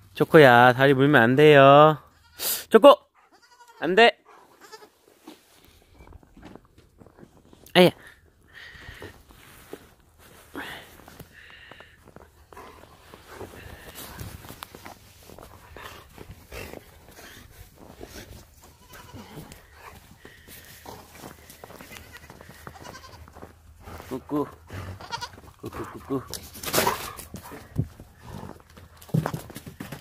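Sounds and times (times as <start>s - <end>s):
goat kids bleating: 3.3s - 5.0s, 18.6s - 19.7s, 21.8s - 23.4s, 25.0s - 25.8s
feet scuffing in snow: 9.2s - 11.2s.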